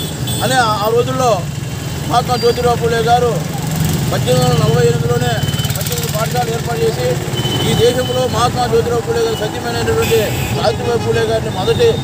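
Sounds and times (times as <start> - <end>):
man speaking: 0.4 - 1.5, 2.1 - 12.0.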